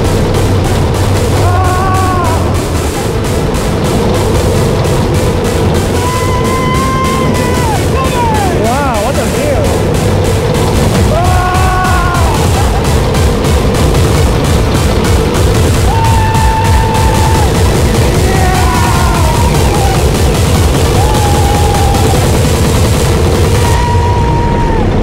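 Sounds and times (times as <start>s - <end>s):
roller coaster track rumble: 0.0s - 25.0s
rushing wind: 0.0s - 25.0s
riders yelling: 1.4s - 3.0s, 6.0s - 9.7s, 11.0s - 12.9s, 15.8s - 20.2s, 20.9s - 22.3s.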